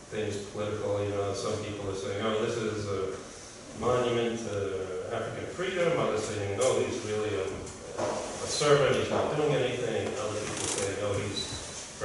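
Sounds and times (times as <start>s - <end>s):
man speaking off-microphone: 3.8s - 11.7s.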